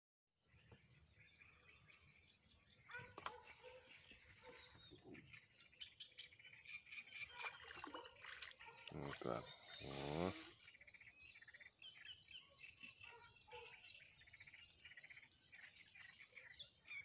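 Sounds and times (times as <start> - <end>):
bird chirps and calls: 0.5 - 17.0.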